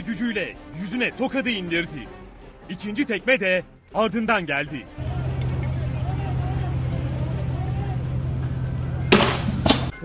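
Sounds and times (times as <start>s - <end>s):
distant shouting: 5.0s - 9.1s
sharp crack: 9.1s - 10.0s.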